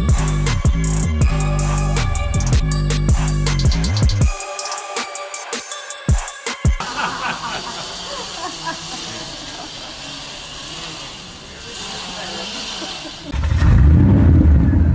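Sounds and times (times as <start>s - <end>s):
drum-beat music: 0.0s - 7.7s
loud low rumble: 13.4s - 14.9s.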